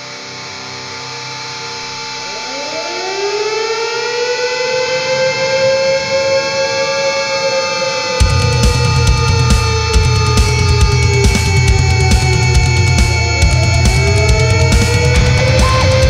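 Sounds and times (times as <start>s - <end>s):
synth drone: 0.0s - 16.0s
tone sliding up in pitch: 13.6s - 16.0s.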